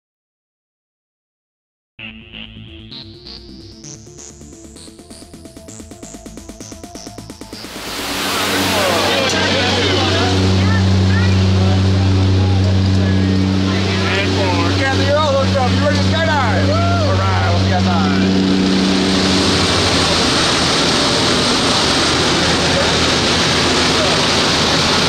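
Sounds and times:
plane engines droning: 2.4s - 25.0s
raised voices: 8.2s - 18.8s.

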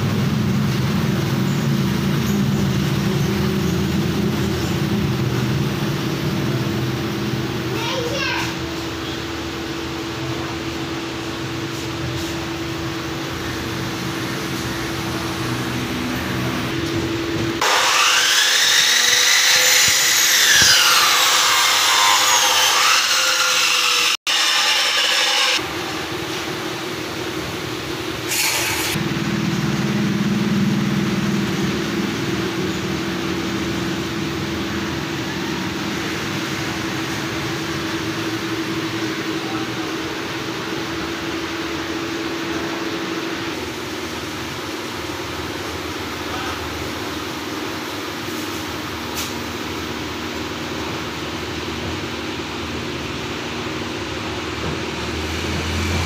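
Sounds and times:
power tool whining: 17.6s - 25.6s.

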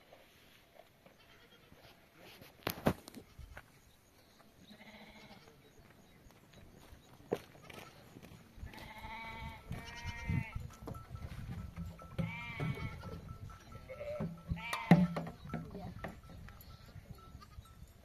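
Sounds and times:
livestock bleating: 1.1s - 1.8s, 4.6s - 5.7s, 8.7s - 10.6s, 12.1s - 15.4s.

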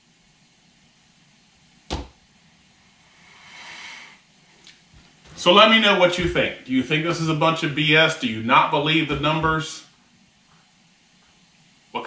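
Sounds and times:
soft hiss: 0.0s - 12.0s
sharp thump: 1.9s - 2.2s.

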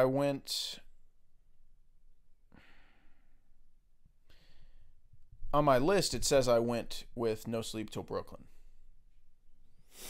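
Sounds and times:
breathy sigh: 2.5s - 3.4s
short breath: 2.5s - 3.4s, 4.2s - 5.0s, 9.8s - 10.0s.

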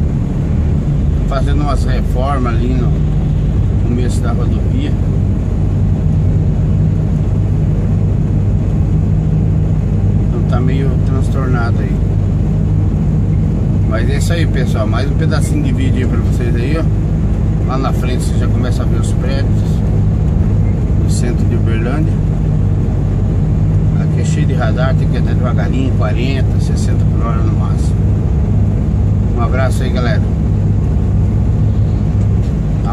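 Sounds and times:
road noise: 0.0s - 32.9s
truck diesel engine droning: 0.0s - 32.9s.

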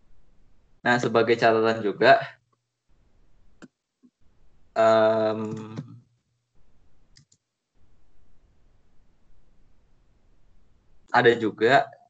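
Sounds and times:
faint background noise: 0.0s - 12.0s
computer mouse clicks: 5.3s - 6.0s, 7.1s - 7.5s.

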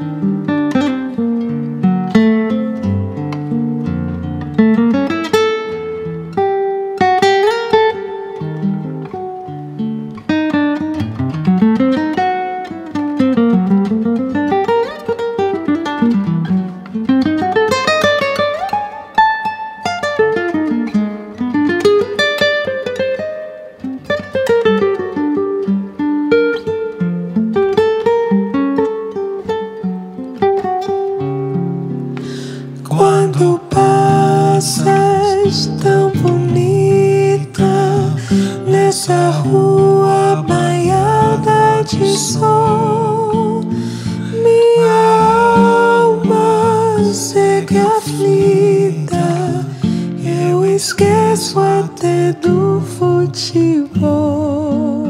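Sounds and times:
classical guitar solo: 0.0s - 55.0s.

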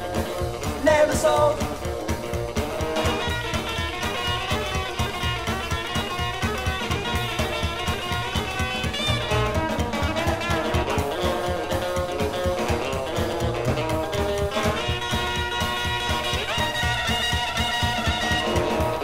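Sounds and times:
bass: 0.0s - 19.0s
drums with steady beat: 0.0s - 19.0s
guitar: 0.0s - 19.0s.

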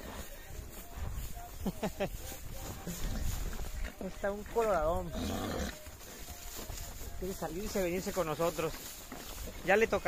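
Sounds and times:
horse low rough vocal sound: 4.7s - 6.0s.

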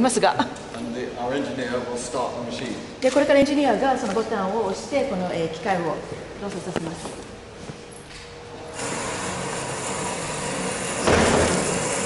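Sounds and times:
vacuum cleaner running: 8.5s - 12.0s.

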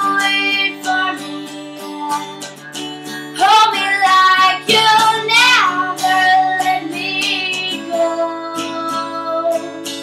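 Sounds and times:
acoustic guitar strumming: 0.0s - 10.0s
woman singing: 0.0s - 10.0s.

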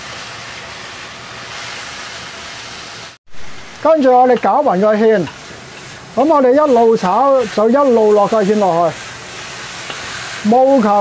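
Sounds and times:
stir-fry sizzling in a wok: 0.0s - 11.0s.

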